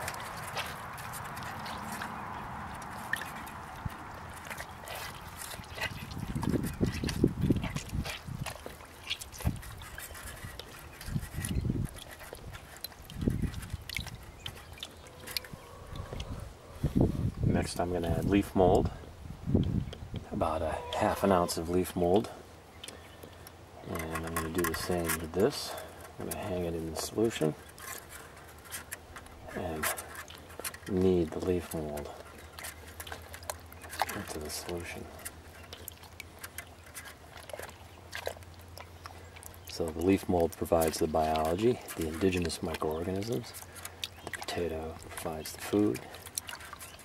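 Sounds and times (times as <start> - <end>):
water splashes and drips: 0.0 - 16.4, 19.5 - 47.0
squelching in water: 0.0 - 18.4, 19.9 - 47.0.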